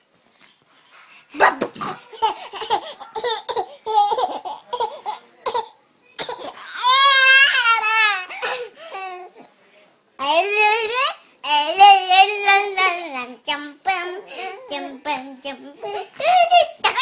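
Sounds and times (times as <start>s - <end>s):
infant laughing and babbling: 1.9s - 9.3s, 13.9s - 17.0s
baby crying: 6.6s - 9.3s.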